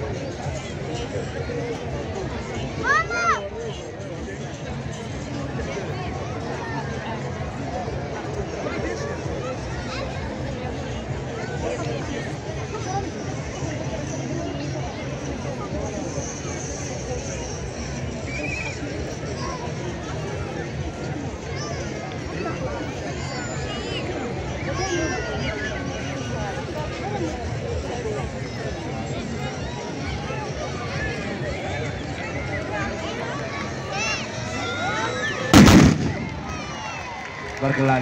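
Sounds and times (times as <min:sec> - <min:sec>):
crowd chatter: 0:00.0 - 0:38.0
musket volley blast: 0:35.5 - 0:36.8.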